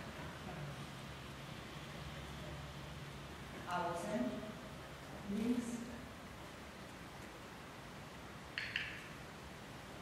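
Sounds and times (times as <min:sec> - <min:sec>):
sharp double click: 0:08.6 - 0:09.1.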